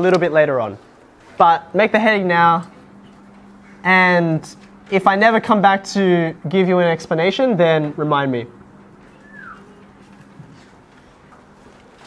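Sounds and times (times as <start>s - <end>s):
faint steady hum: 0.0s - 12.0s
marker squeaking on whiteboard: 9.0s - 10.5s.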